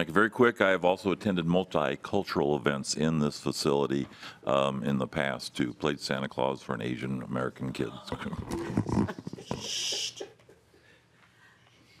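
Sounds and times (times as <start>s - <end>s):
person laughing: 8.4s - 10.7s.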